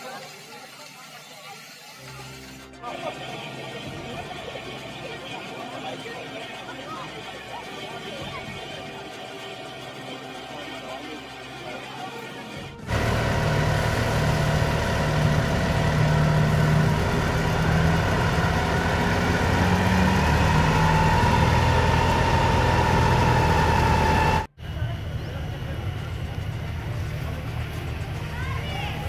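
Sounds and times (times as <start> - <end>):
fire engine motor running: 0.0 - 29.0.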